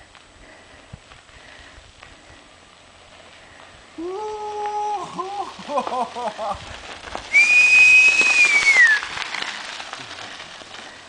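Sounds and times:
person whistling a long note: 7.3s - 9.0s.

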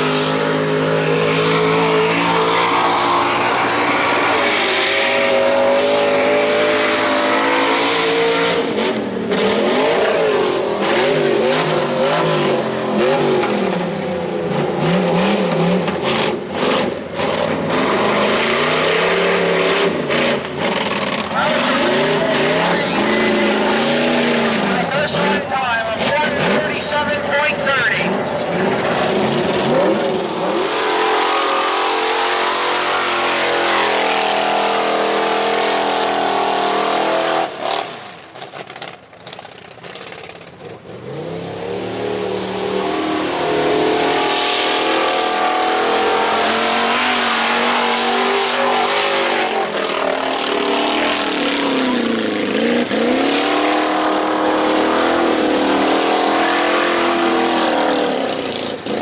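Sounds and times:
buggy engine revving: 0.0s - 59.0s.

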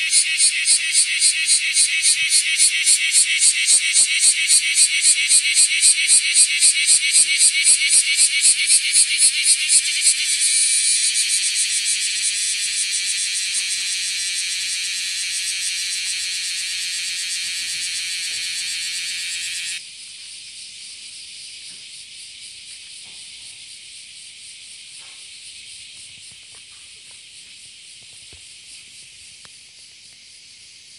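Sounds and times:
cicada buzzing: 0.0s - 19.8s.

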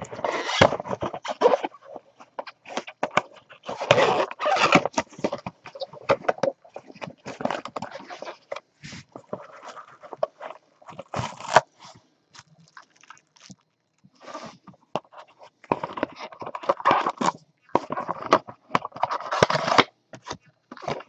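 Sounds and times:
cardboard and plastic rustling: 0.0s - 21.0s.

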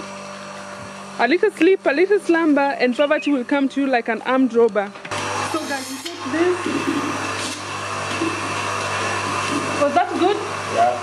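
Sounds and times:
milking machine humming: 0.0s - 11.0s.

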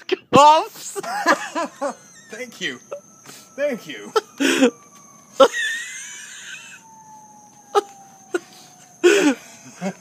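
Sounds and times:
distant siren: 0.3s - 10.0s.

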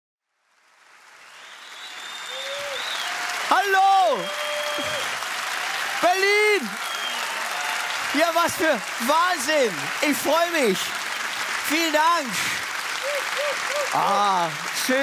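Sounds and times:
audience applauding and cheering: 0.4s - 15.0s
loud whooping shouts: 1.9s - 9.7s, 13.0s - 14.6s.

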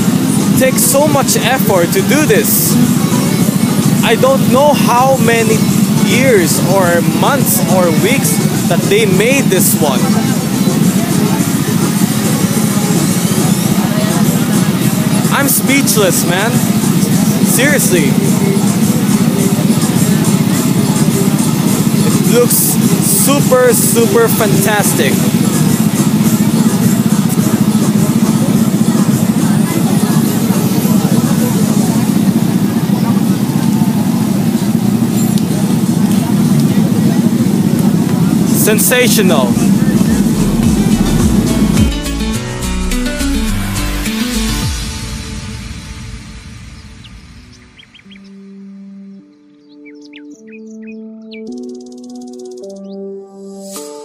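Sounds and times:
faint voices: 0.0s - 41.8s
loud low rumble: 0.0s - 48.6s
buzzy texture: 0.0s - 48.7s
slow synth chords: 0.0s - 54.0s
bird-like chirps: 46.7s - 53.1s.

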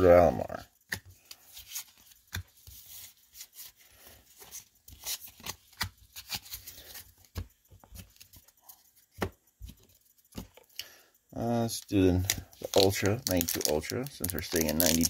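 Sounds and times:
cards scraping together: 0.9s - 10.5s, 11.9s - 15.0s.

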